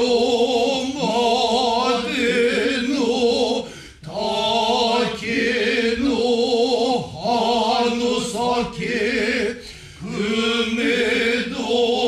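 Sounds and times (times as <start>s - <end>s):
chorus chanting in unison: 0.0s - 12.0s.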